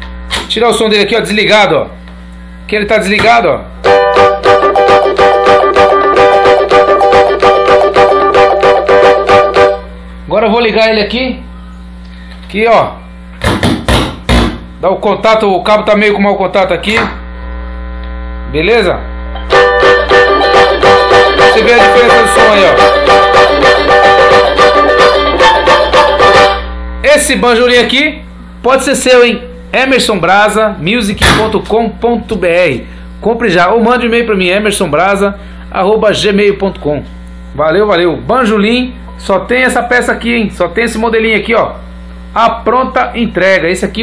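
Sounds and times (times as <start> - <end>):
amplifier mains hum: 0.0 - 44.0
banjo strummed rapidly: 3.9 - 9.8, 19.5 - 26.6.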